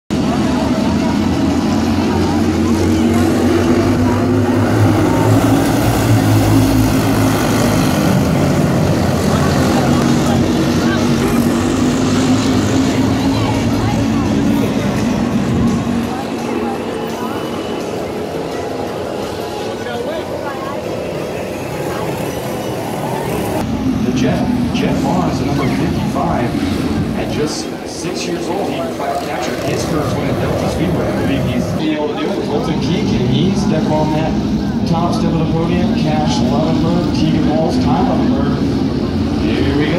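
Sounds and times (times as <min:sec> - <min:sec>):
race car engines revving: 0:00.1 - 0:39.9.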